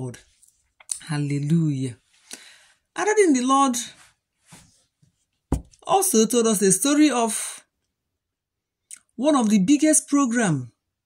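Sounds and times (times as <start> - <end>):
faint breath: 2.2 - 2.9.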